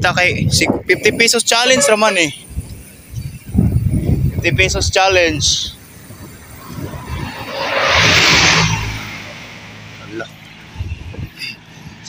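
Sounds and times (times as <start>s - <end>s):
vehicle rushing past: 1.2s - 12.0s.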